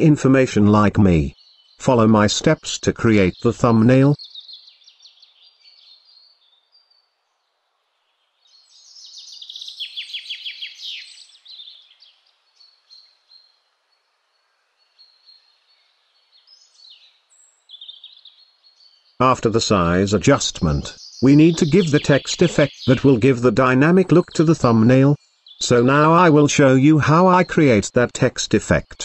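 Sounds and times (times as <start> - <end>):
birds chirping and singing: 0.6 - 29.0.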